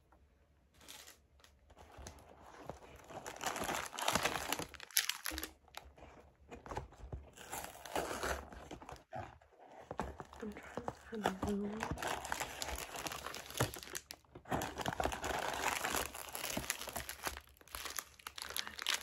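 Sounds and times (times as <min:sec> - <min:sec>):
paper wrappers crinkling: 0:00.8 - 0:09.0, 0:09.8 - 0:19.0
cardboard carton rustling: 0:00.8 - 0:19.0.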